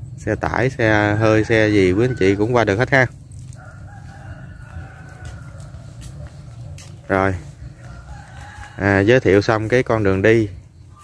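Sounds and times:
rooster crowing: 0.7 - 6.9, 7.5 - 9.6.

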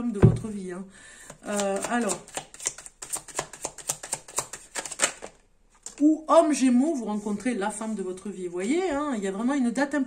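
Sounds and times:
cards being shuffled: 1.3 - 6.0.

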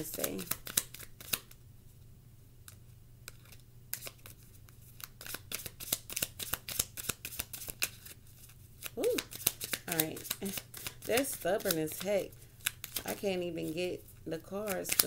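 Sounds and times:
cards being shuffled: 0.0 - 1.6, 2.7 - 14.0, 14.6 - 15.0.

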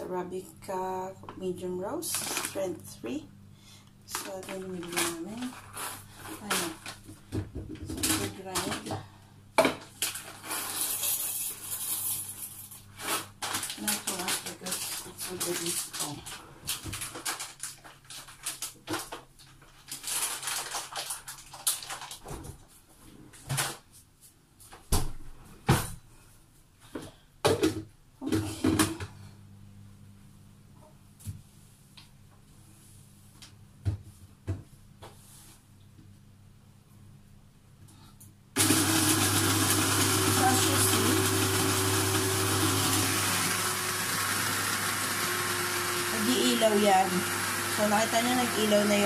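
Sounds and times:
bag crinkling: 2.1 - 2.6, 13.1 - 22.3.

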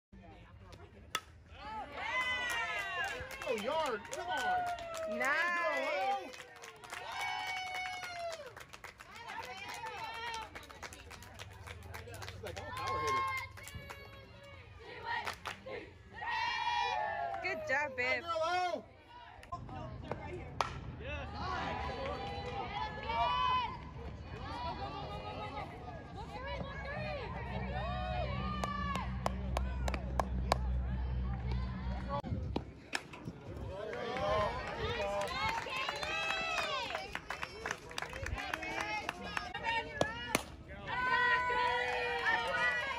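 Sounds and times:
spectators shouting and cheering: 1.6 - 10.6, 11.7 - 19.4, 21.0 - 32.3, 33.4 - 42.9
bat cracking a ball: 20.6 - 20.9.

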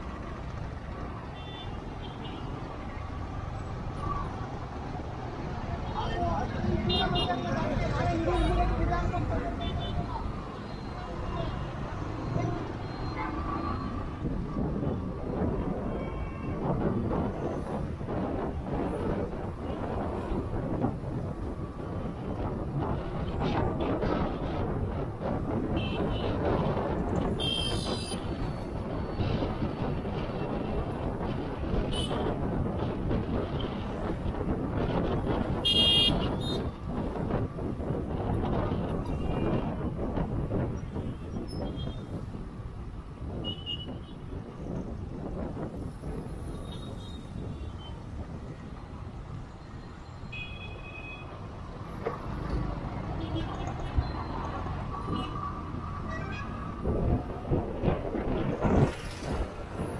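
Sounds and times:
road traffic rumble: 0.0 - 59.9
vehicle horn toots: 35.6 - 36.6.

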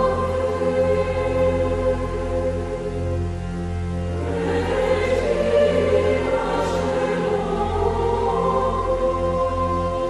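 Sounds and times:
choir singing: 0.0 - 3.2, 4.1 - 10.0
low drone: 0.0 - 10.0.

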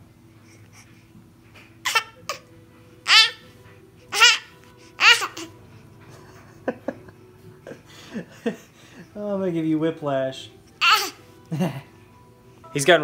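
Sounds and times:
baby squealing and babbling: 1.8 - 2.4, 3.0 - 3.4, 4.1 - 5.5, 10.8 - 11.2.

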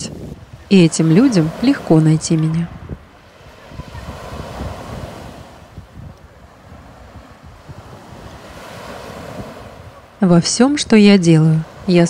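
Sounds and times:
waves breaking on shore: 0.0 - 12.0.

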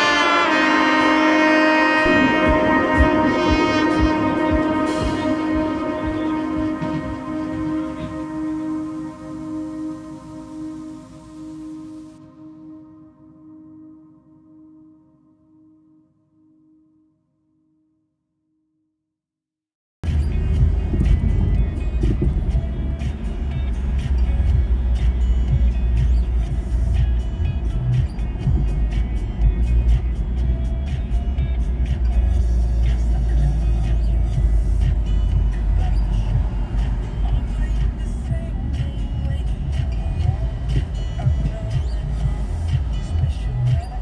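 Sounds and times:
car cabin rumble: 0.0 - 12.2, 20.0 - 44.0
music playing: 0.0 - 15.4, 20.0 - 44.0.

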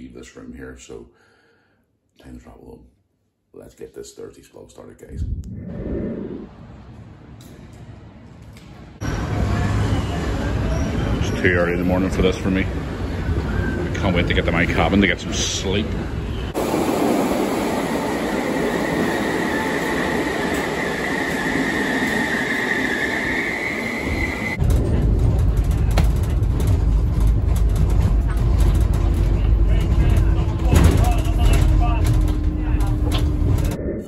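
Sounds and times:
train metallic squeal: 9.0 - 11.5, 18.6 - 24.6
low rumble inside train car: 24.0 - 34.0.

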